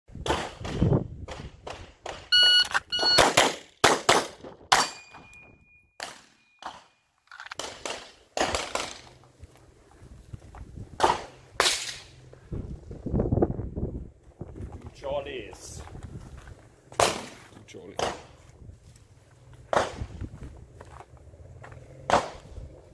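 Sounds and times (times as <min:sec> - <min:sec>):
short electronic beeps: 0:02.3 - 0:03.4, 0:04.9 - 0:06.6.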